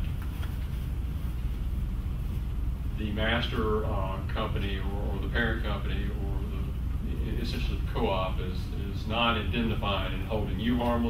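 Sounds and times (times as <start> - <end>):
low room rumble: 0.0 - 11.0.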